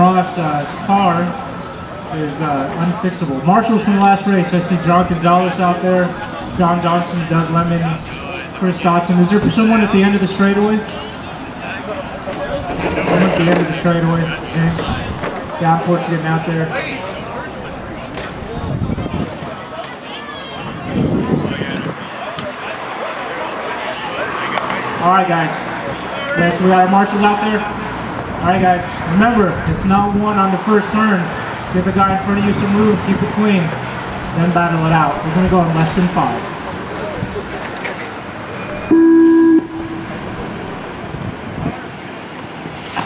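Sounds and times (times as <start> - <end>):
distant voices: 0.0 - 43.0
outdoor background noise: 0.0 - 43.0
electronic start beep: 38.7 - 41.4.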